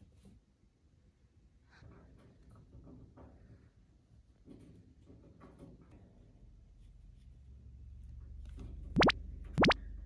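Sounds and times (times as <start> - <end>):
cartoon upward pitch sweeps: 9.0 - 9.8.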